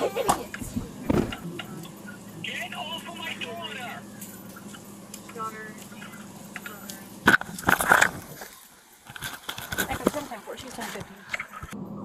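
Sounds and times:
voices: 0.0s - 8.3s, 9.7s - 11.8s
camera knocks and rubbing: 0.7s - 1.4s
clicks and scraping: 5.9s - 11.8s.

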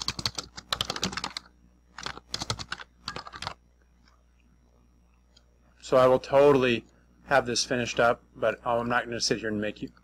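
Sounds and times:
typing on computer keyboard: 0.0s - 3.6s.

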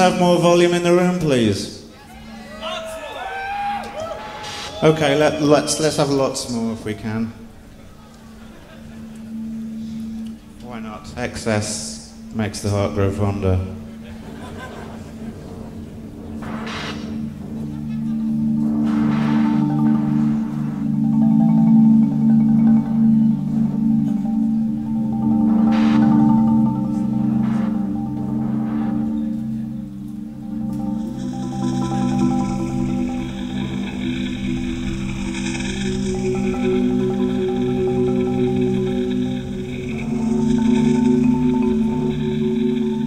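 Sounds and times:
high hissing synth layer: 3.2s - 43.0s
low drone chords: 3.7s - 43.0s
mallet-like struck notes: 4.0s - 43.0s.

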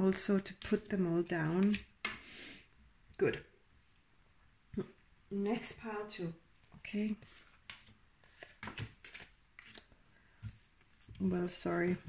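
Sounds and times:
cards sliding and tapping on table: 7.2s - 10.7s.

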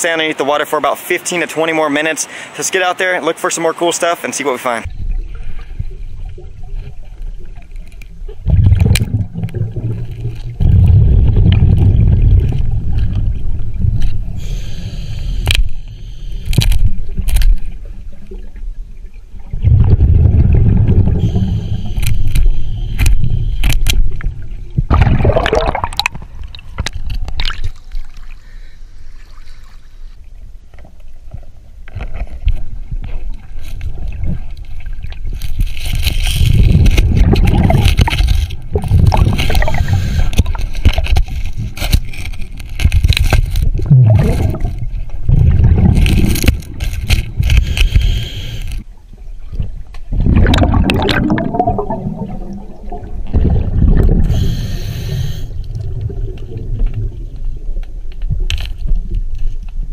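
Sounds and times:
exhaled air bubbling: 4.9s - 29.7s, 32.9s - 59.9s
regulator hiss on inhalation: 14.4s - 16.5s, 21.2s - 23.8s, 39.7s - 40.5s, 47.6s - 48.8s, 54.2s - 55.6s
water sloshing: 16.8s - 29.9s, 30.8s - 54.5s.

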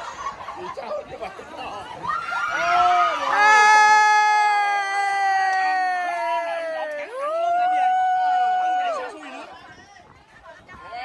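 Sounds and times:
faint voices: 0.0s - 11.0s.

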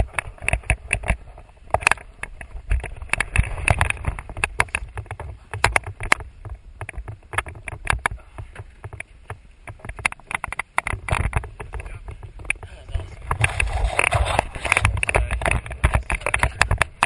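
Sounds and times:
parachute rig bumping against camera: 0.0s - 17.0s
wind rumble on microphone: 0.0s - 17.0s.

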